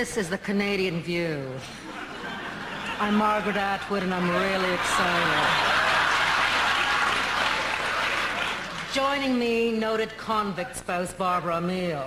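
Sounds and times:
studio audience applauding: 2.8 - 9.2.

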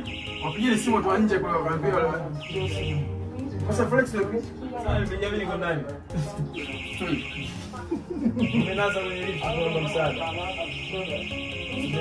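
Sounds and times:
elevator alarm pulsing tone: 0.0 - 1.3, 2.4 - 3.2, 6.5 - 12.0.

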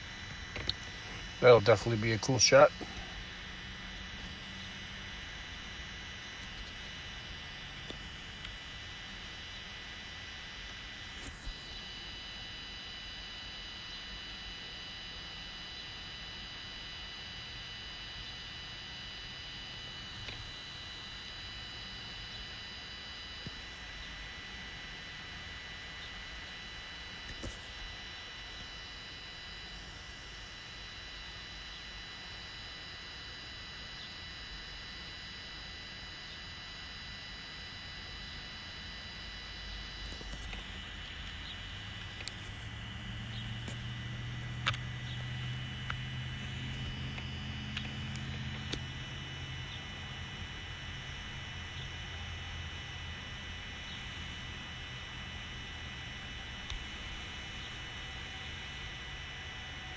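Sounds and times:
faint high-pitched whine: 0.0 - 59.9
outdoor background noise: 0.0 - 59.9.

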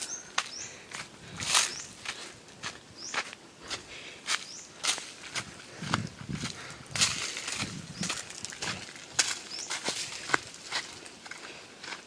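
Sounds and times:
footsteps crunching on dry leaves: 0.0 - 12.0.

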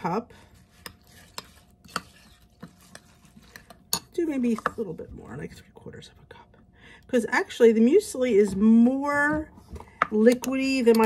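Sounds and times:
spoon stirring in bowl: 0.4 - 5.6, 9.5 - 11.0
spoon clinking against bowl: 3.6 - 4.7.

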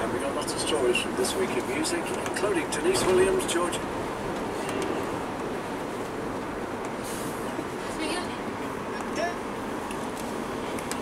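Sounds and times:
diesel engine cruising: 0.0 - 11.0.

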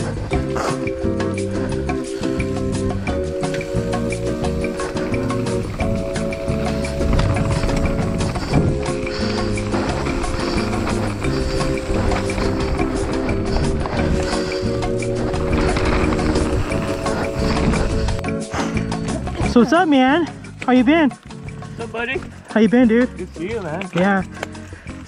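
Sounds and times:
background music with steady beat: 0.0 - 25.0.

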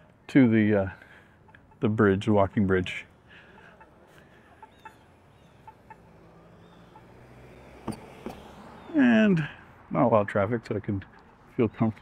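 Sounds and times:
faint street ambience: 0.0 - 12.0.

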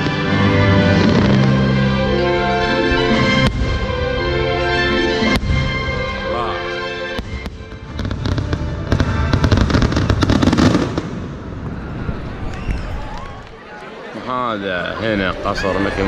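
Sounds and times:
fireworks bursting and crackling: 0.0 - 1.8, 7.2 - 13.6
fireworks show music: 0.0 - 12.6.

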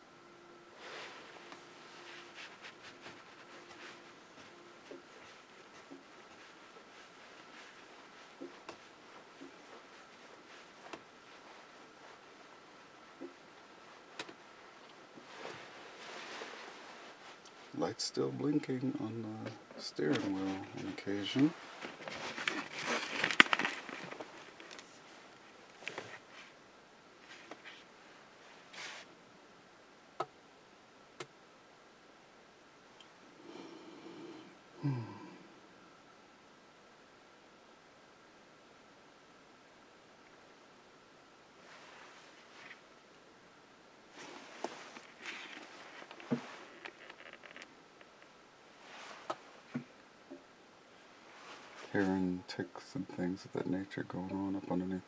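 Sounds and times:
faint rustling: 0.4 - 26.6, 27.2 - 29.2, 41.5 - 43.3, 44.0 - 55.0
camera handling rustle: 21.8 - 25.1, 44.2 - 48.3.

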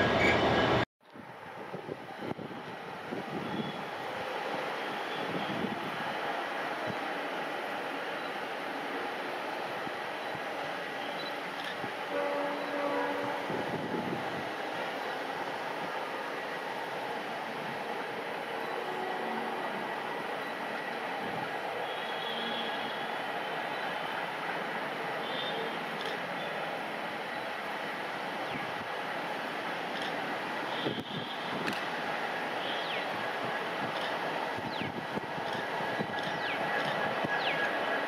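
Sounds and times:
locomotive horn note: 12.1 - 13.8.

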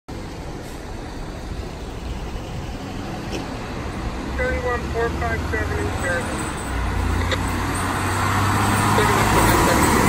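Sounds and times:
road traffic passing: 0.1 - 10.0.

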